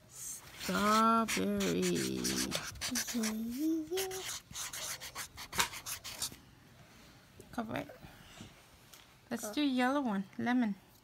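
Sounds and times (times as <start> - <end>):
marker scratching on paper: 0.5 - 6.4.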